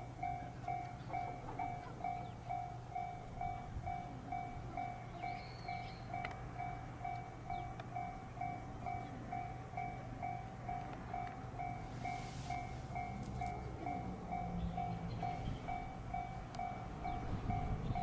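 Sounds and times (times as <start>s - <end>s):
electric train humming: 0.0s - 18.0s
level crossing alarm bell: 0.0s - 18.0s.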